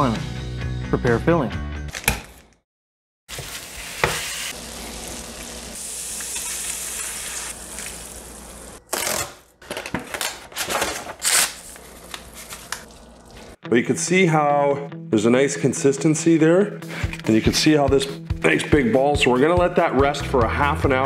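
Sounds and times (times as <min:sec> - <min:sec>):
meat sizzling in a skillet: 0:03.3 - 0:08.8.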